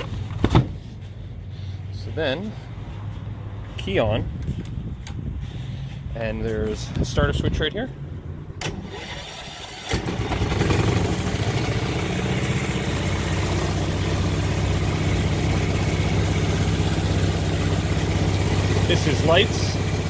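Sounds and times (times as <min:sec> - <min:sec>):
electric starter cranking: 0:08.6 - 0:13.5
car engine running: 0:10.0 - 0:20.0.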